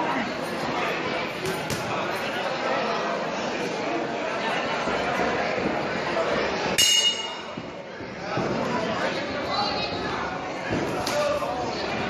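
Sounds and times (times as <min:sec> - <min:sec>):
crowd chatter: 0:00.0 - 0:12.0
boxing ring bell: 0:06.8 - 0:07.6.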